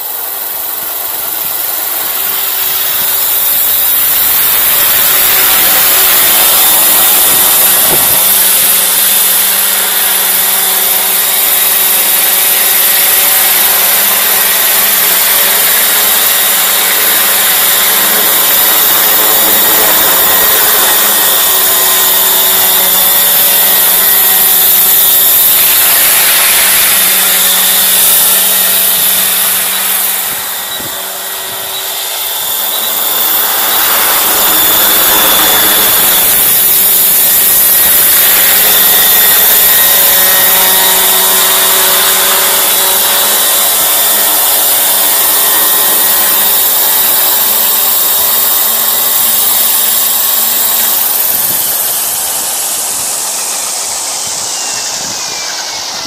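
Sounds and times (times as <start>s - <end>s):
model helicopter rotors whining: 0.0s - 56.0s.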